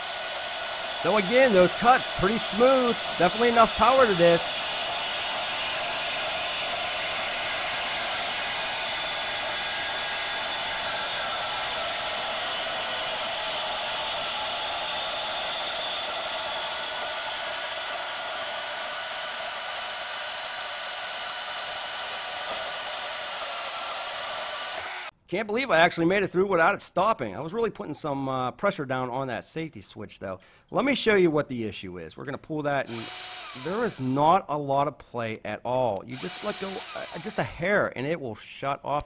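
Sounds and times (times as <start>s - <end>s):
bandsaw cutting steel pipe: 0.0s - 25.1s, 32.9s - 34.4s, 36.1s - 37.6s.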